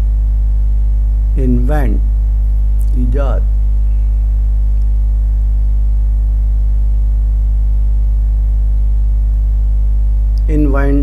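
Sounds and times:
mains hum: 0:00.0 - 0:11.0.

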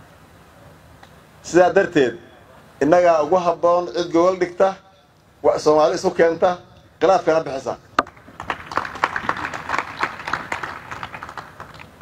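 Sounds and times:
audience applauding: 0:08.1 - 0:12.0.

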